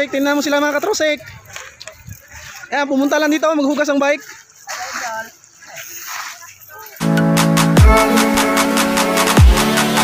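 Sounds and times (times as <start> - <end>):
water splashing and running: 0.0 - 7.0
people's voices: 0.0 - 8.6.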